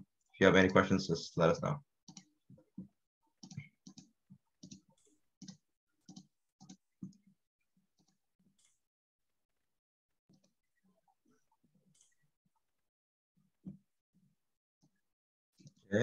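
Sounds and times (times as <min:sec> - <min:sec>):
keyboard and mouse clicks: 0:02.1 - 0:07.3.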